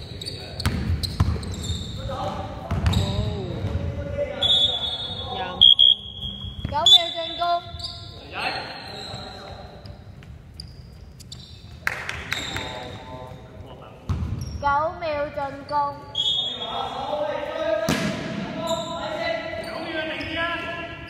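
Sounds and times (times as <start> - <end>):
shrill whistle blasts: 4.4 - 8.2, 16.1 - 16.8.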